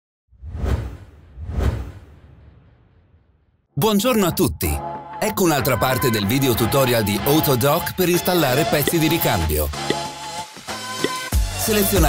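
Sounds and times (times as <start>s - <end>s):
whoosh sound effects: 0.4s - 3.4s.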